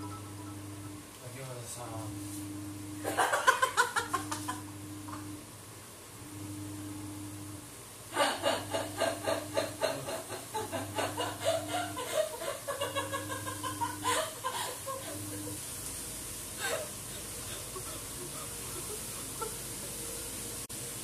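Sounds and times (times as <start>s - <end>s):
low hum switching on and off: 0.0s - 21.0s
woman laughing hard: 3.0s - 4.6s, 8.2s - 15.6s, 16.6s - 19.8s.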